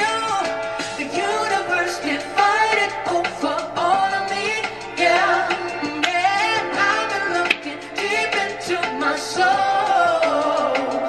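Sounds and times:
instrumental accompaniment: 0:00.0 - 0:11.0
woman singing with vibrato: 0:00.0 - 0:11.0.

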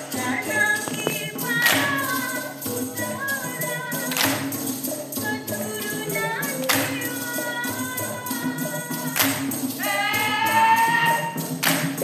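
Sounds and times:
steady percussion beat: 0:00.0 - 0:12.0
group hand clap: 0:00.8 - 0:02.3, 0:04.0 - 0:04.9, 0:06.6 - 0:07.2, 0:09.0 - 0:09.8, 0:10.9 - 0:12.0.

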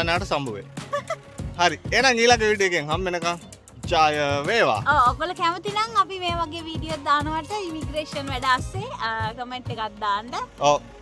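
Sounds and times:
man talking: 0:00.0 - 0:00.7, 0:01.6 - 0:04.9, 0:10.6 - 0:10.9
background music: 0:00.0 - 0:11.0
woman laughing: 0:00.8 - 0:01.3.

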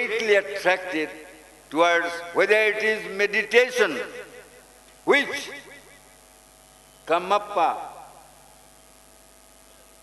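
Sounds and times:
man speaking: 0:00.0 - 0:04.3, 0:05.1 - 0:05.7, 0:07.1 - 0:08.1
electrical mains hum: 0:00.0 - 0:10.0
faint microphone hiss: 0:00.0 - 0:10.0.

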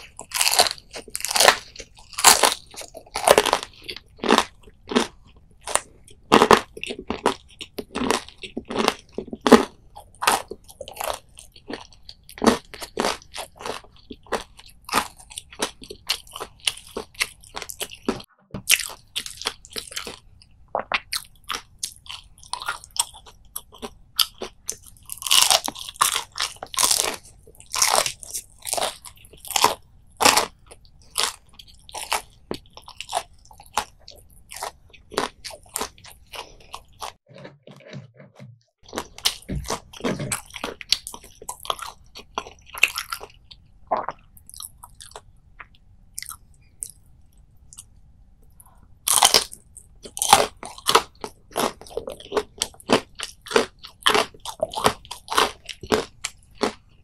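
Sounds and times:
crunchy chewing: 0:00.0 - 0:57.0.

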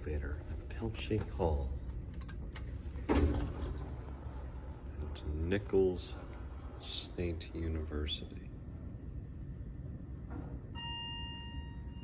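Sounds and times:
elevator chime beep: 0:10.7 - 0:12.0.

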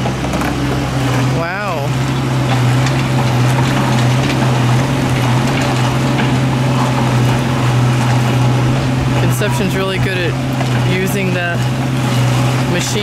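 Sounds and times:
mini excavator diesel engine droning: 0:00.0 - 0:13.0.

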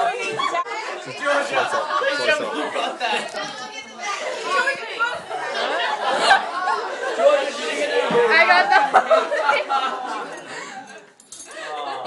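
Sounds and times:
laughter: 0:00.0 - 0:00.8, 0:05.3 - 0:12.0
teenagers talking over one another: 0:00.0 - 0:10.9.

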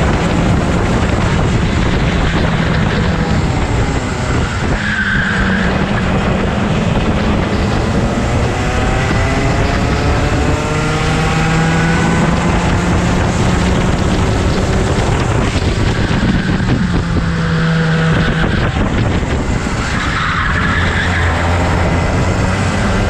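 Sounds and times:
go-kart engine accelerating: 0:00.0 - 0:23.0.

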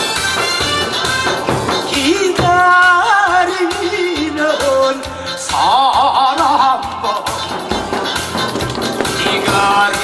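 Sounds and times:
amplified backing music with beat: 0:00.0 - 0:10.0
man singing with heavy vibrato: 0:01.9 - 0:07.7, 0:09.0 - 0:10.0.

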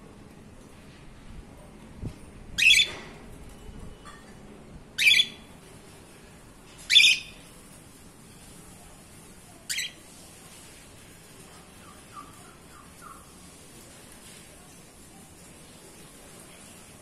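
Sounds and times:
cockatiels shrill calls: 0:02.6 - 0:03.0, 0:06.9 - 0:07.4.

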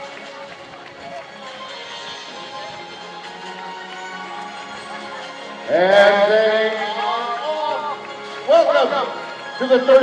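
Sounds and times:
runners' footsteps on pavement: 0:00.0 - 0:05.6, 0:06.7 - 0:10.0
crowd voices: 0:00.0 - 0:10.0
music over loudspeaker: 0:00.0 - 0:10.0.

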